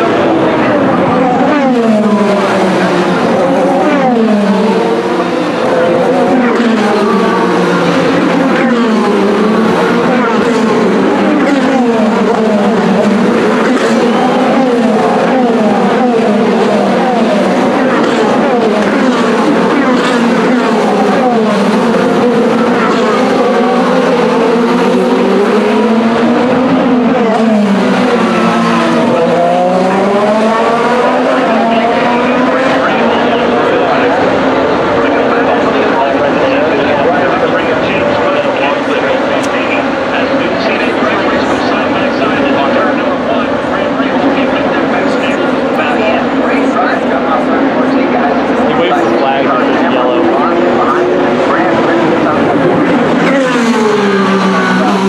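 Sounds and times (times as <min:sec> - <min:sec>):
race car engines passing by: 0:00.0 - 0:55.0.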